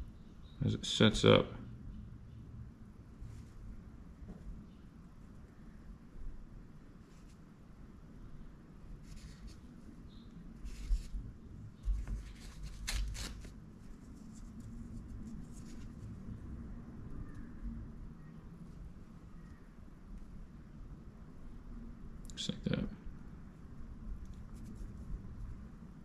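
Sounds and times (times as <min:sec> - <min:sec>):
soft knocks and scuffs: 0:04.2 - 0:04.6, 0:11.8 - 0:12.4.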